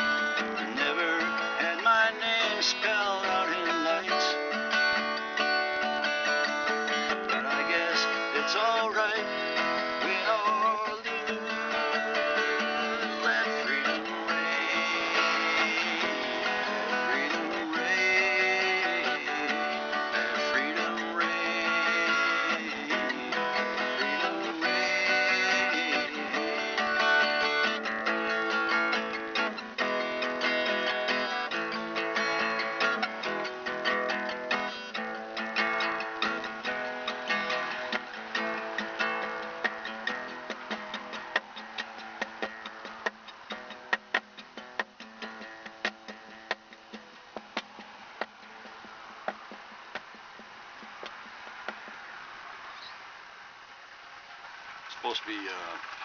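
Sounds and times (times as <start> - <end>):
gliding guitar melody notes: 0.0 - 51.4
strummed acoustic guitar: 0.0 - 56.0.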